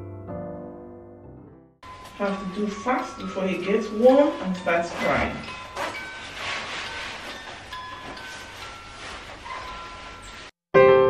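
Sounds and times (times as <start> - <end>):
padded jacket rustling: 4.3 - 10.6.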